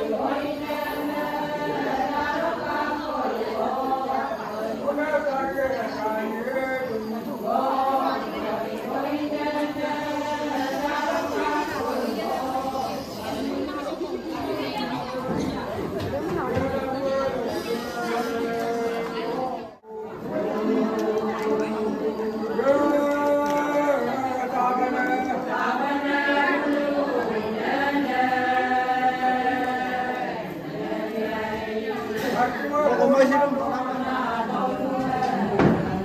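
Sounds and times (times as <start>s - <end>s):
crowd chatter: 0.0s - 36.0s.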